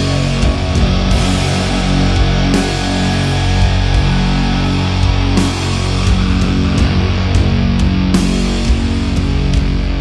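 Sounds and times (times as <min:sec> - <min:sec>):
heavy distorted electric guitars: 0:00.0 - 0:10.0
slow steady drums: 0:00.0 - 0:10.0.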